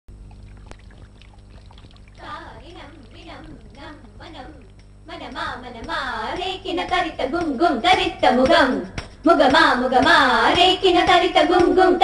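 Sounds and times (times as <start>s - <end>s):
water pouring and trickling: 0.1s - 3.7s
small water drips: 0.1s - 5.0s
low steady hum: 0.1s - 12.0s.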